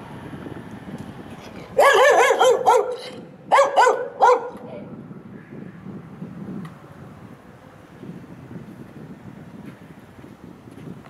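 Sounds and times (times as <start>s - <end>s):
dog barking: 1.8s - 4.7s.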